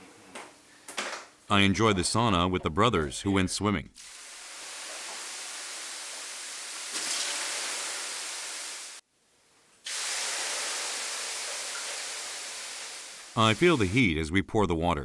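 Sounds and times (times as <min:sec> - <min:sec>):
water hissing on hot stones: 0:04.0 - 0:09.0, 0:09.9 - 0:14.1.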